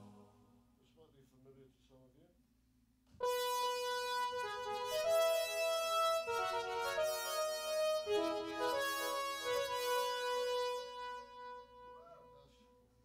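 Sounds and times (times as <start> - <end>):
synthesizer chord with moving line: 3.2 - 12.4.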